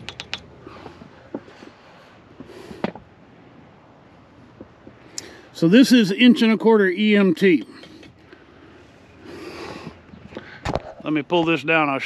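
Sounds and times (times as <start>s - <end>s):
handling clicks and knocks: 0.0s - 1.5s.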